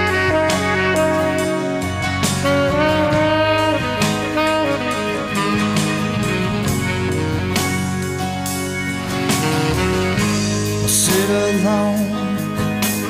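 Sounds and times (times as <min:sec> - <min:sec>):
blues-rock band playing: 0:00.0 - 0:13.0.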